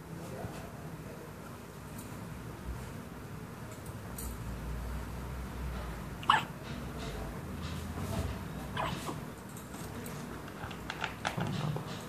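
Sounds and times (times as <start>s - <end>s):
baby hiccuping: 6.2s - 6.6s, 8.8s - 9.0s.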